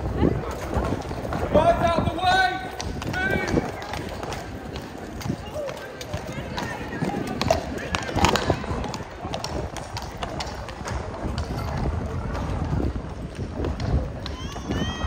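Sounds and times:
crowd chatter: 0.0s - 15.0s
horse hooves on paving stones: 0.0s - 15.0s.

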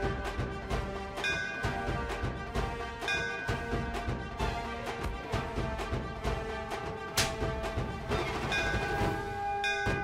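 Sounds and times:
brass bell struck and ringing: 8.5s - 10.0s.

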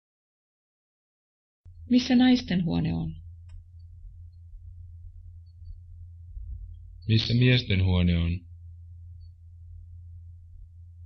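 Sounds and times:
low tape hum: 1.7s - 11.0s.

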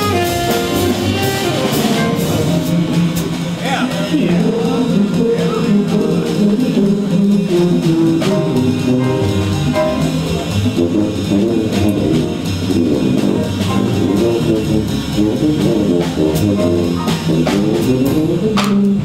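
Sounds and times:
saxophone section: 0.0s - 9.6s
jazz big band playing: 0.0s - 19.0s
tuba: 0.0s - 19.0s.

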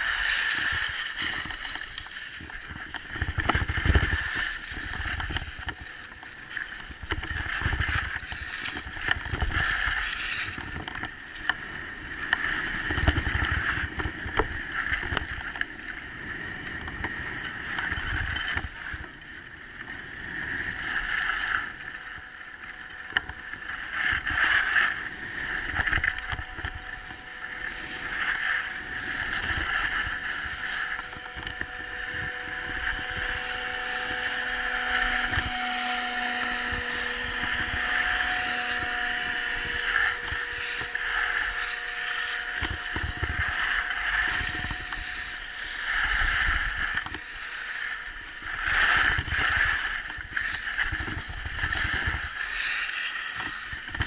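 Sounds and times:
skis scraping over snow: 0.0s - 15.1s, 23.6s - 54.0s
wind noise on microphone: 0.0s - 54.0s.

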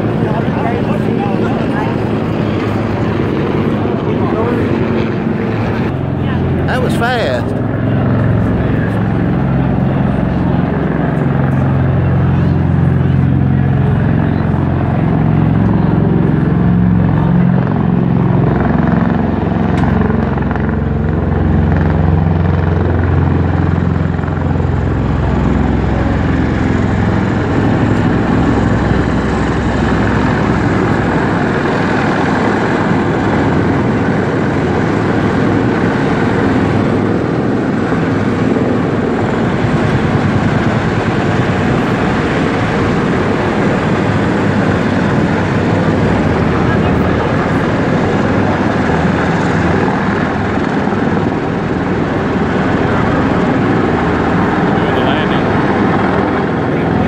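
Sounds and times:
tiltrotor aircraft droning overhead: 0.0s - 57.0s.

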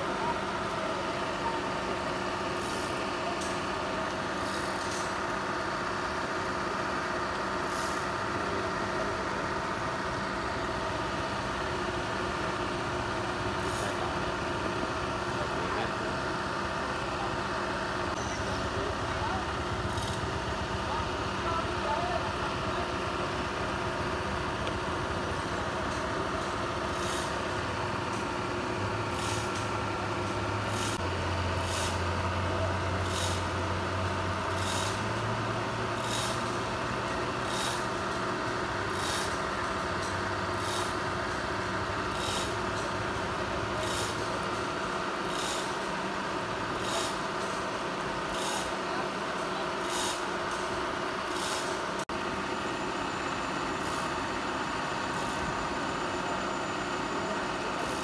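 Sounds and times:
excavator diesel engine droning: 0.0s - 58.0s.

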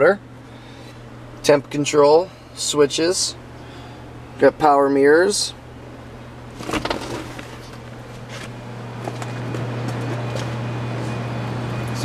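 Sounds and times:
low machine hum: 0.0s - 12.0s
rustling handling noises: 6.6s - 11.2s.

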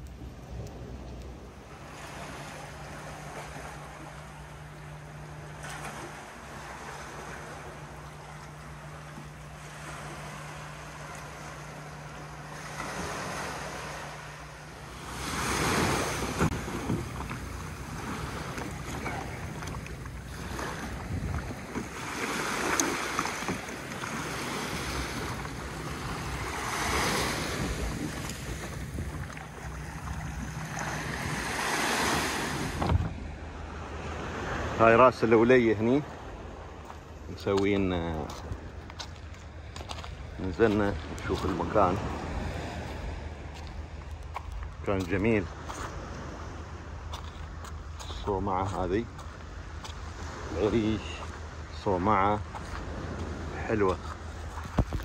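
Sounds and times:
small waves washing onto sand: 0.0s - 55.0s
wind on the microphone: 15.9s - 22.0s, 25.1s - 33.4s, 52.1s - 55.0s.

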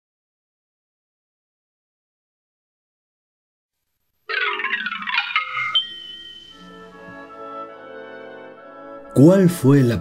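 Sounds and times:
bright chime-like jingle: 4.3s - 7.4s
soft sustained music: 5.1s - 10.0s.

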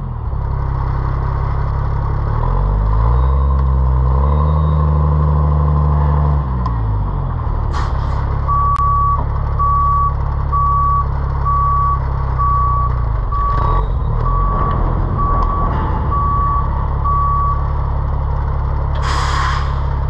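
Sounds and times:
diesel engine at low revs: 0.0s - 20.0s
truck reverse alarm beeping: 2.5s - 5.0s, 8.4s - 19.6s.

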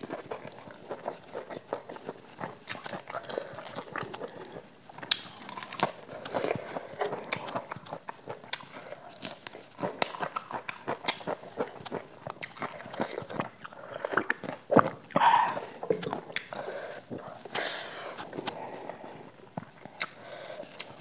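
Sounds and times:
chewing with mouth smacks: 0.0s - 21.0s.

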